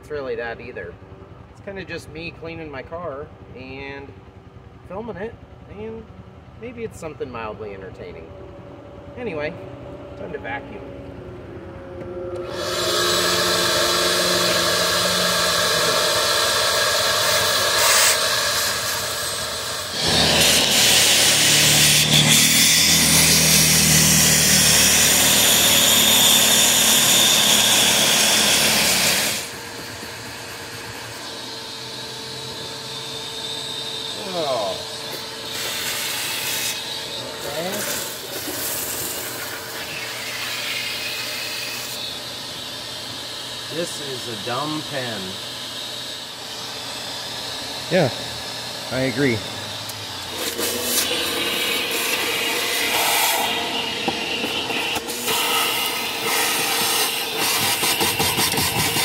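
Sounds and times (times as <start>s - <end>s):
shop vacuum sucking: 12.0s - 59.0s.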